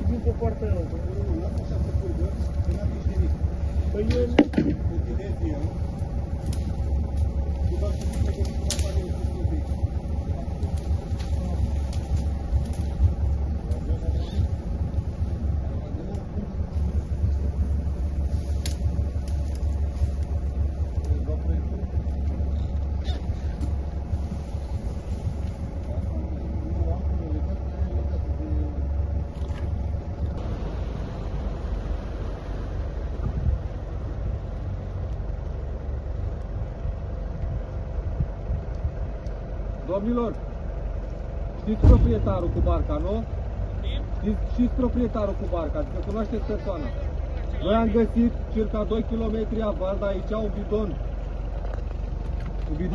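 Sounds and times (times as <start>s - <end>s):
boat engine running: 0.0s - 52.9s.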